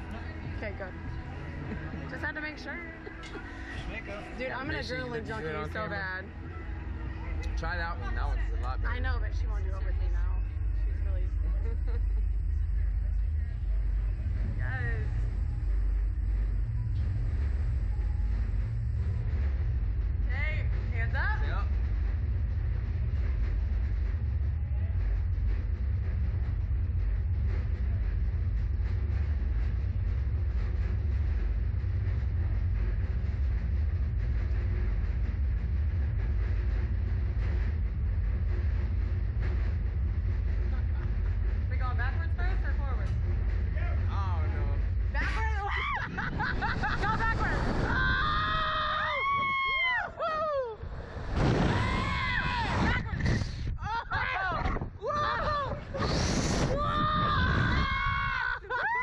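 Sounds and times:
ride machinery humming: 0.0 - 54.0
riders screaming: 47.2 - 50.7, 51.6 - 53.2, 53.8 - 59.0.

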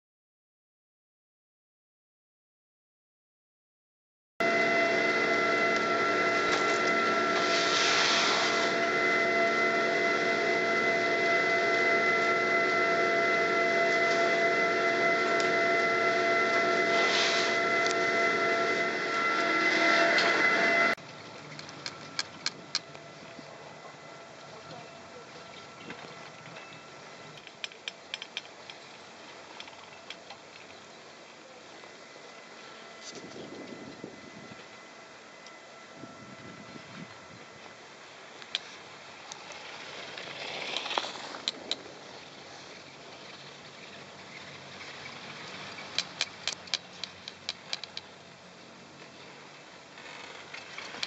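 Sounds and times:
hissing swells: 4.4 - 27.4
chairlift machinery hum and whine: 4.4 - 51.0
steady hiss: 4.7 - 29.7.

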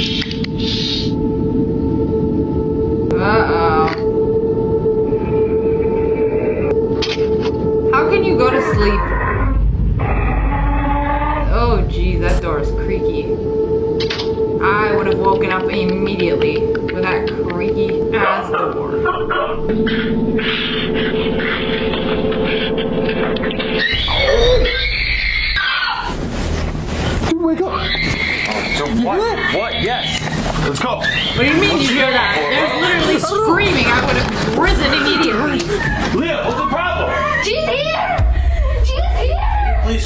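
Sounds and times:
dense low rumble: 0.0 - 40.0
higher tone layer: 0.0 - 40.0
ominous low drone: 0.0 - 40.0
woman screaming: 37.0 - 40.0.

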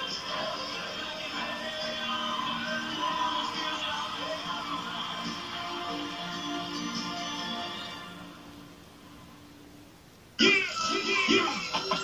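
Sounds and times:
held notes music from tv speaker: 0.0 - 9.6, 10.4 - 12.0.

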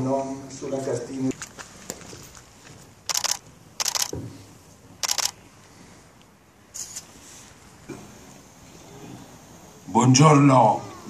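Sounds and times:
camera shutters clicking: 3.1 - 4.2, 5.0 - 5.4.

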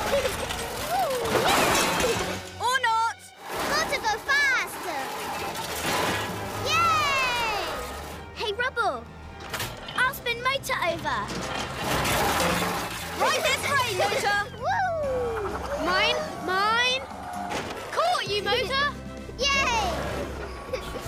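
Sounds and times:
cartoon background music: 0.0 - 21.0.

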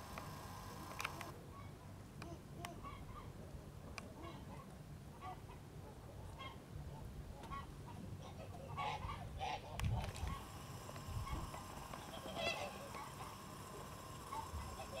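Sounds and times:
fowl calling: 8.7 - 15.0.

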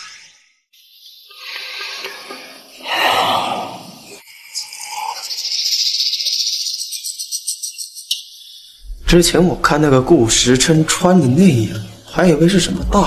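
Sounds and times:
shaker-like rattle in music: 4.4 - 8.1
person speaking: 9.0 - 13.0.

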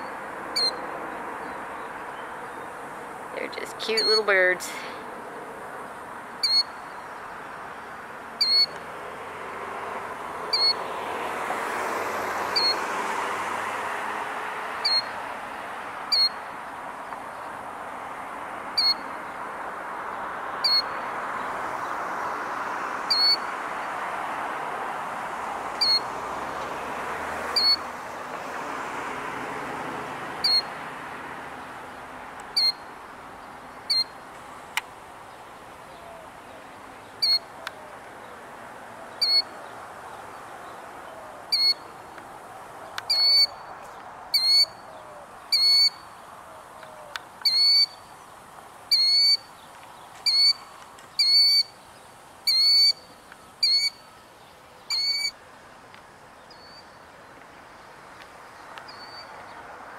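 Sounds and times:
bird calling: 0.0 - 2.8, 3.4 - 5.0, 6.4 - 8.8, 10.5 - 10.9, 12.5 - 12.9, 14.8 - 15.3, 16.1 - 16.5, 18.8 - 19.2, 20.6 - 22.0, 23.1 - 23.5, 25.8 - 26.1, 27.5 - 27.9, 30.4 - 30.8, 32.5 - 32.9, 33.8 - 34.2, 35.7 - 38.4, 39.0 - 42.2, 42.8 - 48.2, 48.9 - 51.8, 52.4 - 55.4, 58.8 - 59.6
bird calling high notes: 43.1 - 43.6, 45.5 - 46.0, 51.2 - 51.7, 52.5 - 54.1, 54.9 - 55.4.

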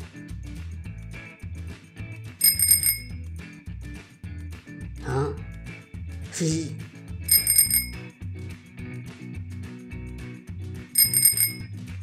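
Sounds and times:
music with steady bass beat: 0.0 - 12.0
bicycle bell ringing: 2.4 - 3.2, 7.3 - 8.1, 11.0 - 11.7.

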